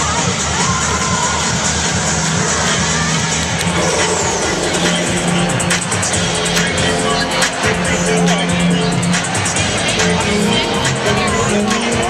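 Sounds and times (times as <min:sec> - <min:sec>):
crowd cheering and shouting: 0:00.0 - 0:08.6
loud music over loudspeakers: 0:00.0 - 0:12.0.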